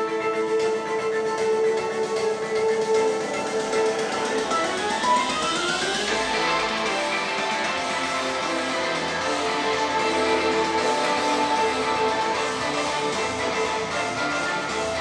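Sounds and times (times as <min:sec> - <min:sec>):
music with plucked guitar-like notes: 0:00.0 - 0:15.0.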